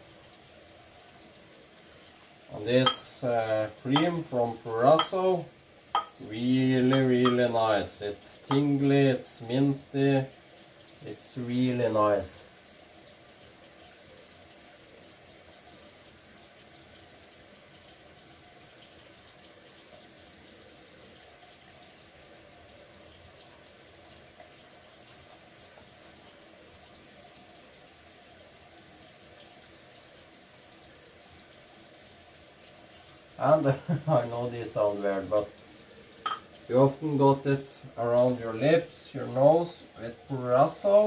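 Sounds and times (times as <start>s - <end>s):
tap running into a sink: 2.6s - 3.1s, 3.9s - 5.2s, 5.9s - 7.6s, 8.4s - 8.9s, 36.2s - 36.6s.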